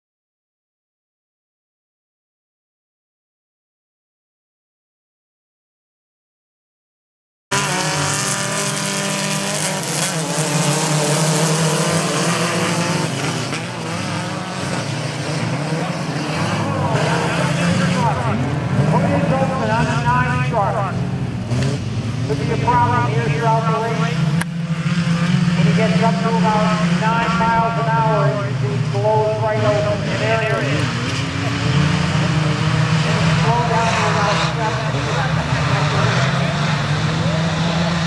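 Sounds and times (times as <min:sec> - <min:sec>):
race truck engines revving: 0:07.5 - 0:38.0
people talking: 0:15.8 - 0:21.0, 0:22.3 - 0:24.4, 0:25.6 - 0:31.7, 0:33.2 - 0:38.0.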